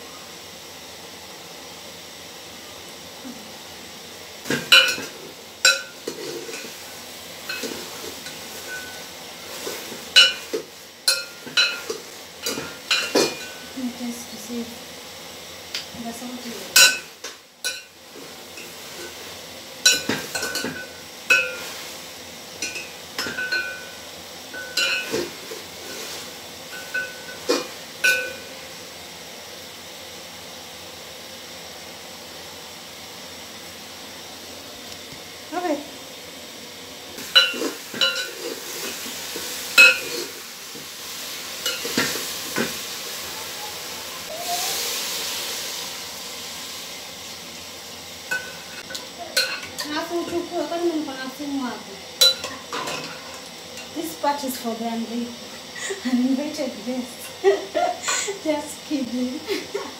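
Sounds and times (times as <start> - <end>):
spoon clinking against metal pot: 5.7 - 6.1, 11.1 - 13.6, 16.8 - 17.9, 22.6 - 24.0, 24.6 - 25.2, 49.4 - 49.9, 52.2 - 53.2
water pouring into pot: 38.6 - 47.3.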